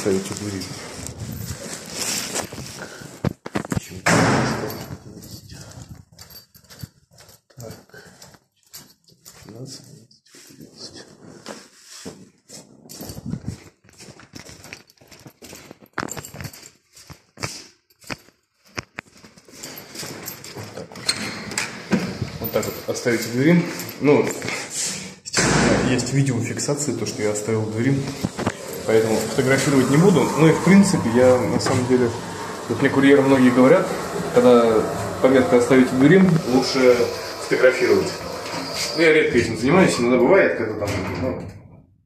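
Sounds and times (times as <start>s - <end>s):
plastic bag rustling: 0.0s - 3.7s.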